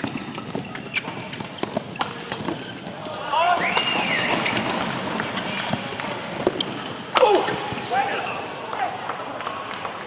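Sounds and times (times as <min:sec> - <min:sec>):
racket hitting shuttlecock: 0:00.0 - 0:02.7.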